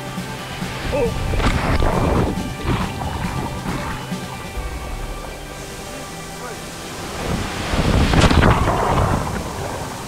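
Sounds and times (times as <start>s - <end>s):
rushing water: 0.0s - 10.0s
splash into water: 0.4s - 10.0s.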